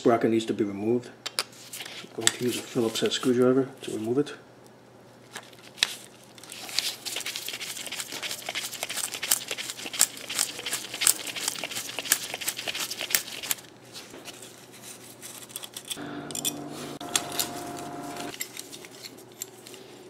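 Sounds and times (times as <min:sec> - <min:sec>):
handling of parts: 0:08.5 - 0:20.0
screwdriver clicking and scraping: 0:08.9 - 0:13.7, 0:15.2 - 0:19.8
steady hum with tones: 0:15.9 - 0:18.4.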